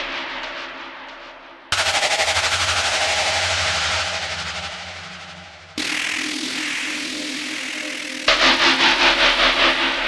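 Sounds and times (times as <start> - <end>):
pulsing synthesizer effect: 5.8 - 8.3.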